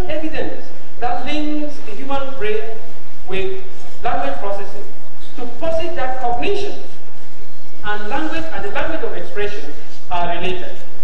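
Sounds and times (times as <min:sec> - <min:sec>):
man lecturing: 0:00.0 - 0:06.9, 0:07.8 - 0:11.0.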